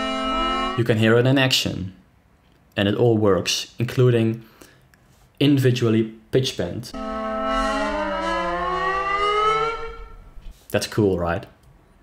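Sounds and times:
pitch-bent synthesizer chord: 0.0s - 1.0s, 6.9s - 10.5s.

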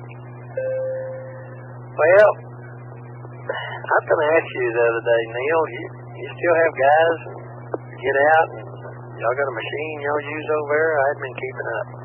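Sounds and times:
steady low hum: 0.0s - 12.0s
electronic beep: 0.6s - 1.6s.

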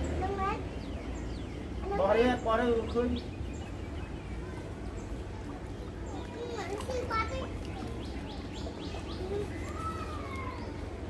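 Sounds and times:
people calling out: 9.0s - 11.0s.

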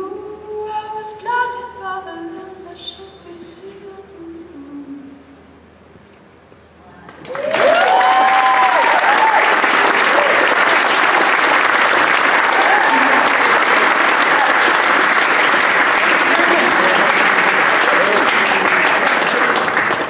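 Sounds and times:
audience applauding and cheering: 7.1s - 20.0s
audience whoops: 7.2s - 17.1s.

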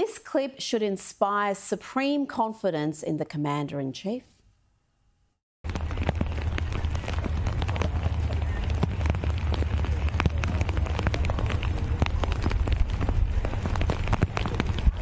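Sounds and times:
rain on umbrellas: 5.6s - 15.0s
wind buffeting microphone: 5.7s - 15.0s.

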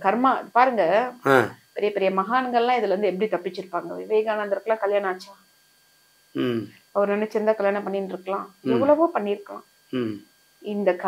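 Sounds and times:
woman talking: 0.0s - 1.2s, 1.8s - 5.3s, 7.0s - 9.6s, 10.7s - 11.0s.

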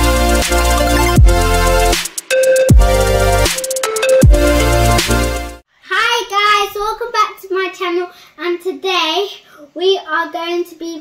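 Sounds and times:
electronic music with heavy bass: 0.0s - 5.6s.

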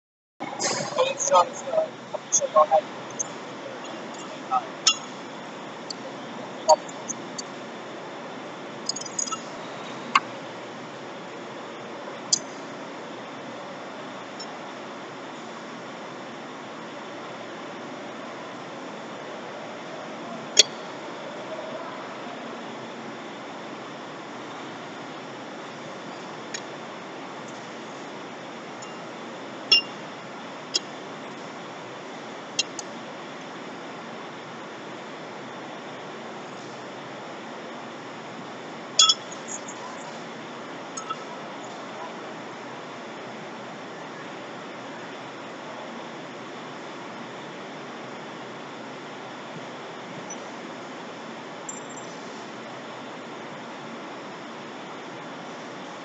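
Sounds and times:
steady background hiss: 0.4s - 56.0s.

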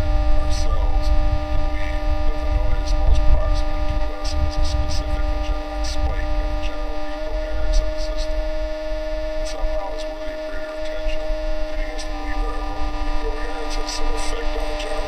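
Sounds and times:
electronic droning hum: 0.0s - 15.0s
low rumble: 0.0s - 15.0s.

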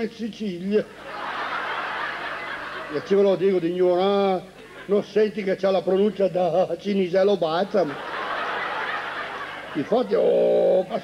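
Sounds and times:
audience laughing: 1.0s - 3.6s, 7.8s - 11.0s.

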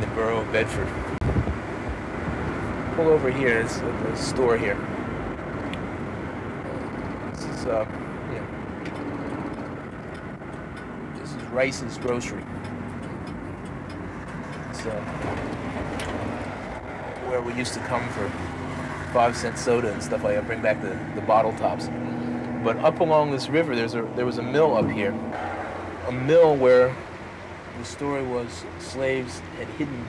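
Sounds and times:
vehicle engine and road rumble: 0.0s - 30.0s.

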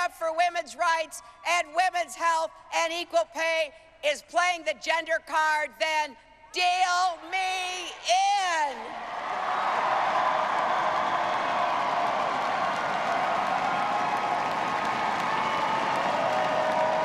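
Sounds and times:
crowd cheering and whooping: 8.8s - 17.0s
crowd applauding: 8.9s - 17.0s.

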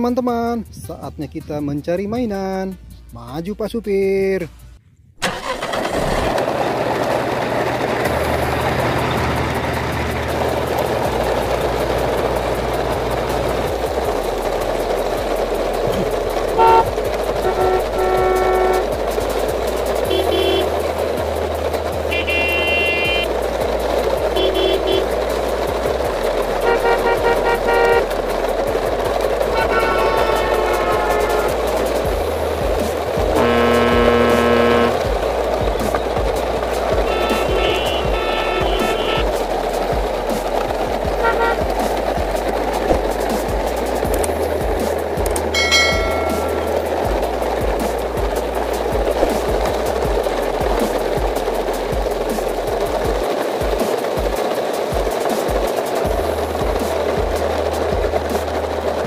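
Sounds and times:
toy trucks rolling over gravel: 5.4s - 59.0s
vehicle horn toots: 16.6s - 18.9s, 20.1s - 20.8s, 22.1s - 23.4s, 24.4s - 25.2s, 26.6s - 28.0s, 29.5s - 31.6s, 33.4s - 35.1s, 37.0s - 39.3s, 41.2s - 41.7s, 45.6s - 46.8s.

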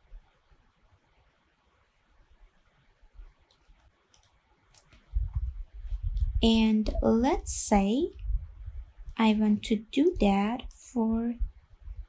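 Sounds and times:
faint mouse clicks: 3.2s - 5.5s.

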